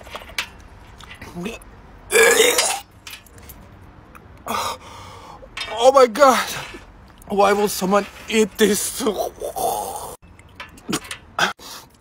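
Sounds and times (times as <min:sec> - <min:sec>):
man gagging: 0:09.4 - 0:10.2.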